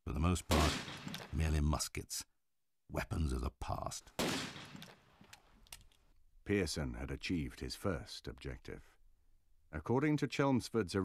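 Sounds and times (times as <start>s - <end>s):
gunshot with echo: 0.5s - 1.3s, 4.2s - 4.9s.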